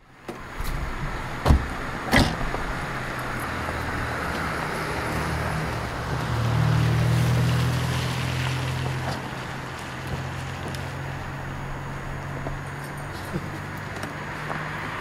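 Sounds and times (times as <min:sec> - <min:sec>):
car engine humming: 0:00.0 - 0:15.0
street traffic noise: 0:00.0 - 0:15.0
sharp knocks: 0:01.4 - 0:02.6.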